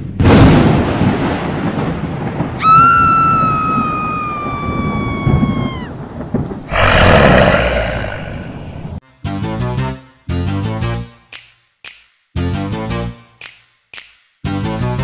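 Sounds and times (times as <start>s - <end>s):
low thunder-like rumble: 5.3s - 9.0s
harsh noisy burst: 6.7s - 8.9s.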